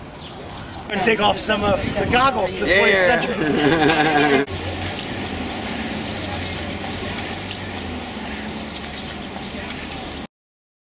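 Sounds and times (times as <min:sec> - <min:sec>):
faint distant voices: 0:00.4 - 0:10.3.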